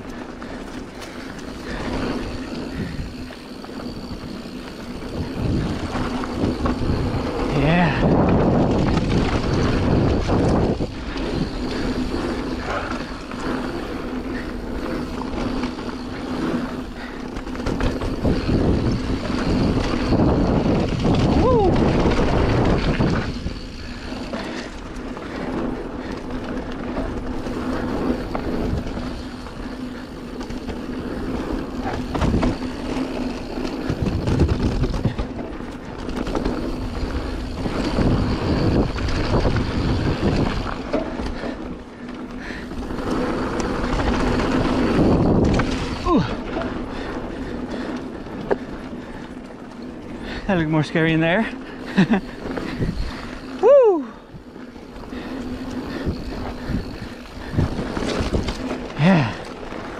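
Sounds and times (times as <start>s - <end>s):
bike tyres on dirt: 0.0s - 59.9s
wind on microphone: 4.9s - 13.1s, 17.6s - 24.4s, 36.6s - 41.4s, 55.2s - 59.4s.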